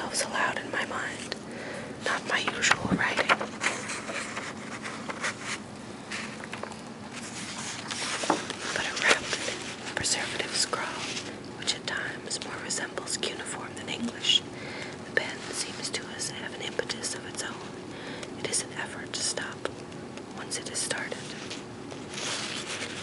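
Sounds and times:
person whispering: 0.0s - 1.4s, 2.0s - 3.4s, 8.7s - 14.5s, 15.1s - 17.7s, 18.4s - 19.7s, 20.3s - 21.5s.

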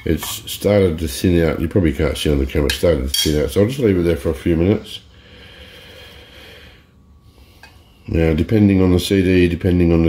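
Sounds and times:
faint breath near microphone: 5.0s - 8.1s.

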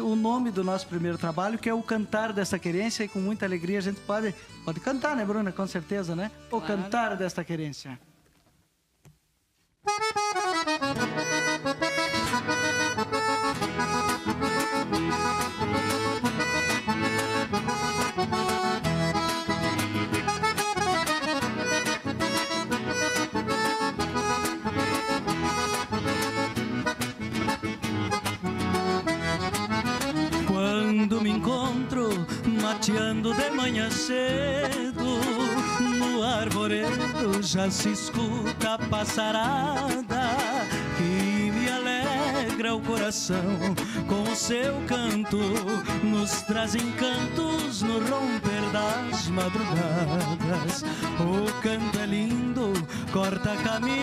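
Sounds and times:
accordion: 0.0s - 7.8s, 9.8s - 54.0s
guitar: 0.0s - 9.2s, 9.8s - 54.0s.

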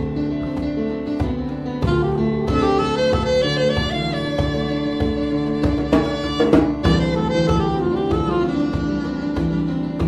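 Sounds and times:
percussion: 0.0s - 10.0s
saxophone: 1.7s - 10.0s.

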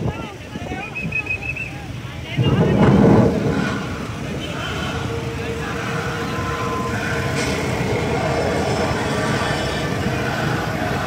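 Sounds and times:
crowd voices: 0.0s - 11.0s
loud rush of noise: 1.6s - 11.0s
long steady tone: 2.4s - 11.0s.

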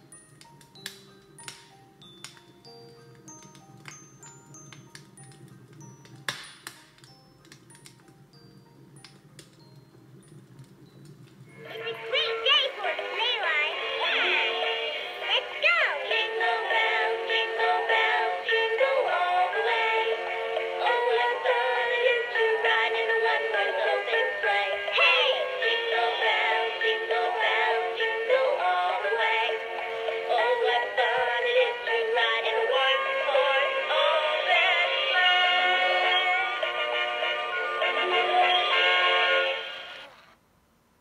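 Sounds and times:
song from small toy speaker: 0.0s - 9.9s, 10.8s - 40.1s.

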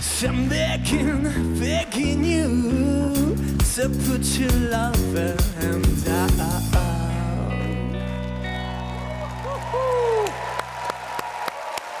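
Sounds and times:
audience clapping in rhythm: 0.0s - 1.1s, 6.3s - 12.0s.

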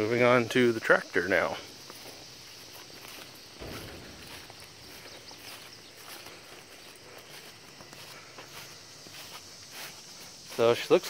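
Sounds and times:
crickets chirring: 0.0s - 11.0s
footsteps on grass: 0.8s - 11.0s
low thump: 3.6s - 6.3s.

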